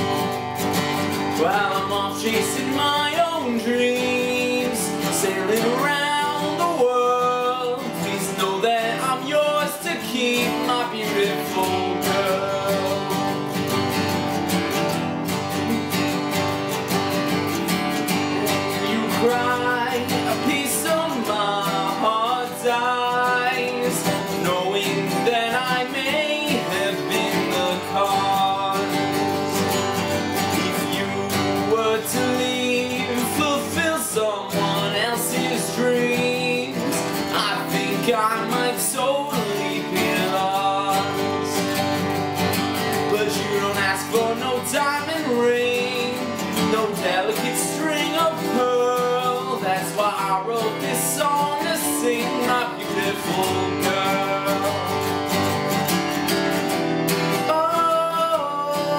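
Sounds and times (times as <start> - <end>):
acoustic guitars strummed: 0.0 - 58.9
man singing: 0.0 - 58.9.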